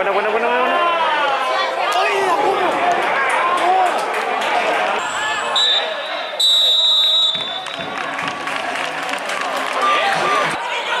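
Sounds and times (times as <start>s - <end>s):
voices shouting: 4.9s - 7.6s
referee's whistle blasts: 5.0s - 7.8s.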